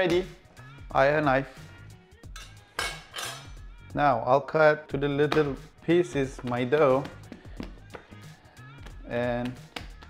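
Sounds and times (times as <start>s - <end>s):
background music: 0.0s - 10.0s
knife clinking on stone countertop: 2.3s - 3.6s.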